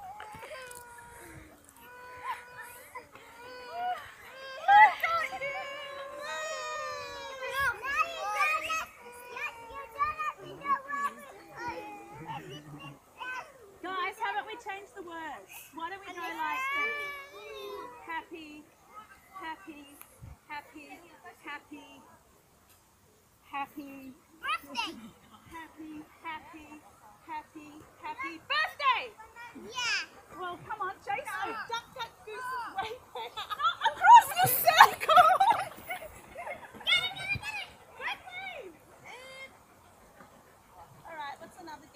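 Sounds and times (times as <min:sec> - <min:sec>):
young children calling: 0:00.0 - 0:13.8, 0:16.1 - 0:18.2, 0:31.1 - 0:39.6
children chattering: 0:00.0 - 0:22.4, 0:24.1 - 0:41.9.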